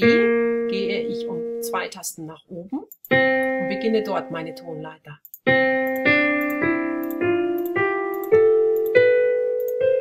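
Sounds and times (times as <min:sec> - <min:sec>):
piano scale notes: 0:00.0 - 0:02.3, 0:03.1 - 0:10.0.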